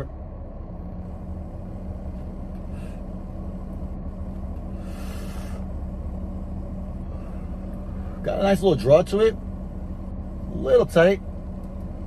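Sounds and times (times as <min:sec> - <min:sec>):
car engine idling: 0:00.0 - 0:12.0
breathy hiss: 0:04.7 - 0:05.7.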